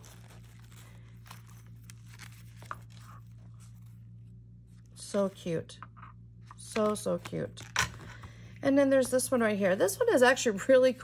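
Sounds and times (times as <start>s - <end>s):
paper journal rustling: 0.0s - 4.9s
steady low hum: 0.0s - 11.0s.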